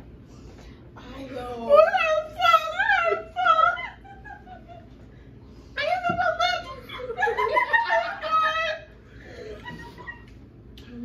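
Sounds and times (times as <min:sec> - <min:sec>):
woman laughing high-pitched: 0:06.8 - 0:10.3.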